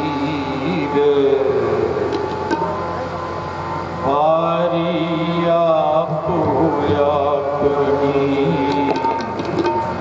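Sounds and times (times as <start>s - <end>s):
person singing a hymn: 0.0s - 1.9s, 4.0s - 9.7s
steady drone: 0.0s - 10.0s.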